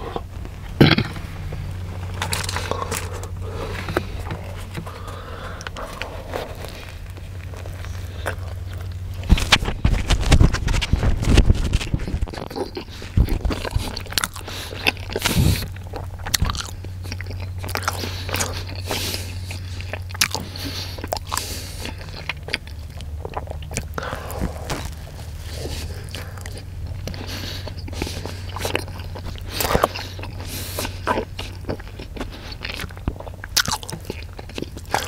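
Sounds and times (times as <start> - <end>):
close chewing of a sandwich: 0.0 - 35.0
low hum: 0.0 - 35.0.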